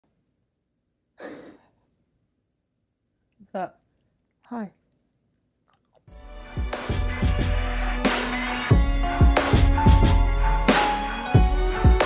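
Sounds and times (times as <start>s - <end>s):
person sighing: 1.2s - 1.8s.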